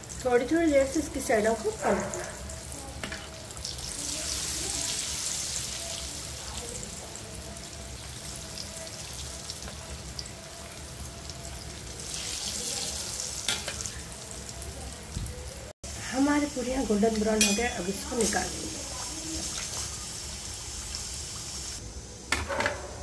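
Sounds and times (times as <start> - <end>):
deep-frying in hot oil sizzle: 0.0 - 22.3.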